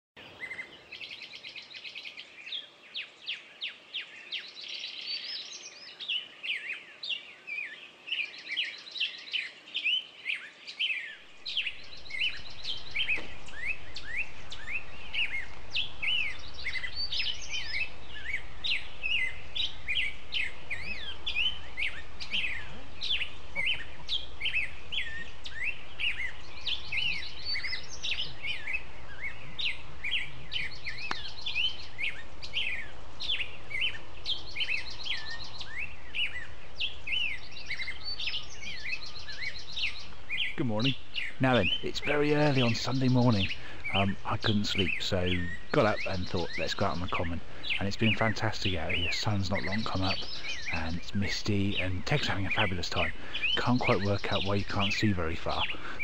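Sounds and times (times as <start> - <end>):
songbirds chirping and trilling: 0.2 - 56.0.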